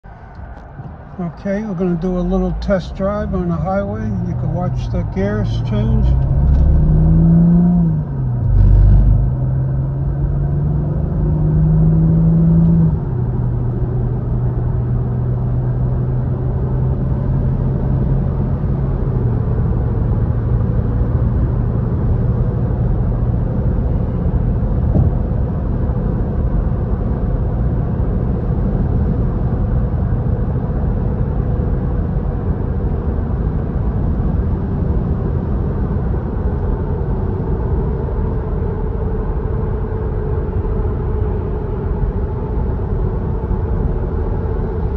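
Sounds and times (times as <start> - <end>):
tyre and road noise: 0.0 - 31.6
car engine accelerating: 0.3 - 44.9
loud low thump: 24.8 - 25.2.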